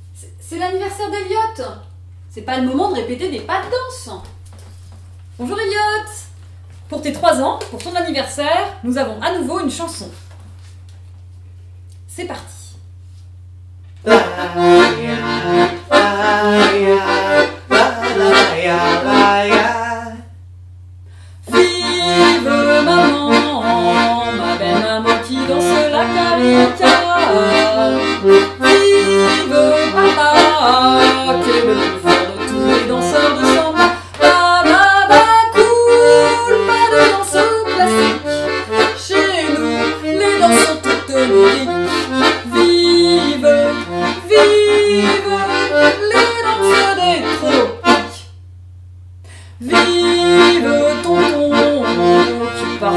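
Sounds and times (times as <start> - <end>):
lively accordion tune: 14.0 - 20.3, 21.4 - 48.4, 49.6 - 52.9.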